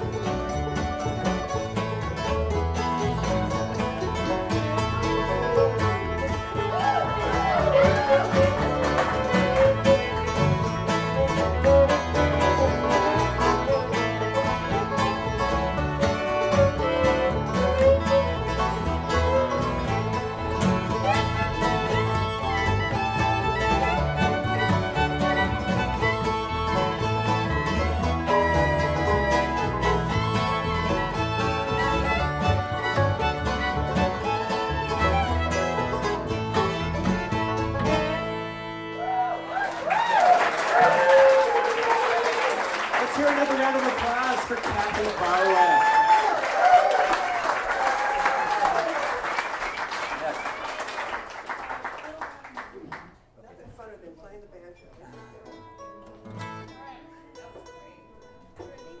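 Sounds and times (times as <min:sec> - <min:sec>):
bowed fiddle melody: 0:00.0 - 0:39.7
bluegrass band playing: 0:00.0 - 0:52.2, 0:54.6 - 0:59.0.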